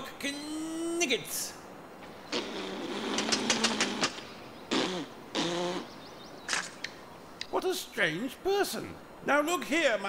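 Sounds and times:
man blowing raspberries: 2.2s - 6.0s.

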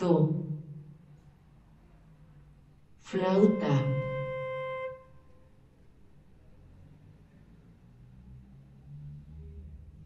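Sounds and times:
flute note: 3.1s - 5.6s.

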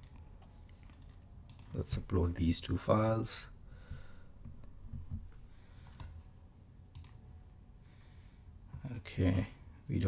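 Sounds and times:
faint computer mouse clicks: 6.9s - 7.2s.

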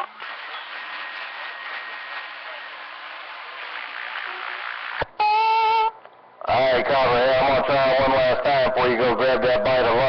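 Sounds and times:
radio static hiss: 0.0s - 5.4s.

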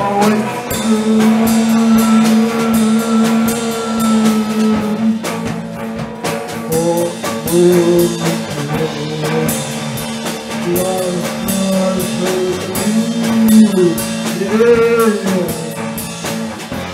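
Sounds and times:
band playing: 0.0s - 16.9s
loud droning note: 0.6s - 5.8s
drum hits: 0.6s - 7.7s.

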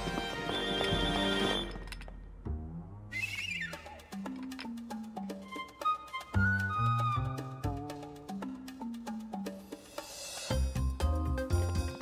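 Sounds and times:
cartoon background music: 2.5s - 12.0s.

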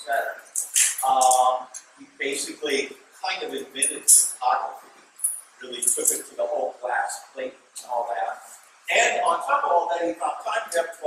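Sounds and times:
man giving a lecture: 0.0s - 4.9s, 5.6s - 11.0s.

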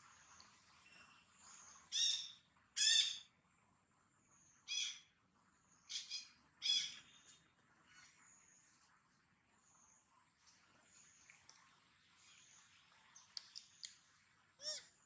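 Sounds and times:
high-pitched animal calls: 14.6s - 15.0s.

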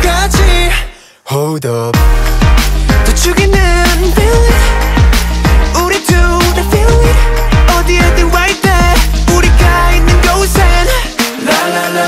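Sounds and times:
electronic dance music: 0.0s - 0.9s, 1.9s - 12.0s
deep sliding bass hits: 2.0s - 11.0s.

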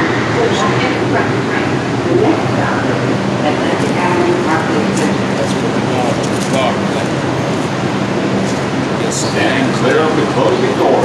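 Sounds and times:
indistinct voices: 0.0s - 11.0s
subway car running noise: 0.0s - 11.0s
train motors humming: 0.0s - 11.0s.

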